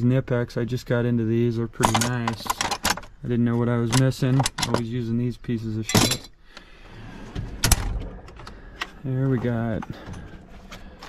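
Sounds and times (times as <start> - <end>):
metal drawer sliding shut: 7.0 - 8.4.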